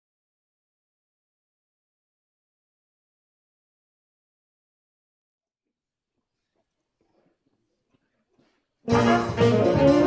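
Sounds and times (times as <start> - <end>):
jazz big band playing: 8.8 - 10.0.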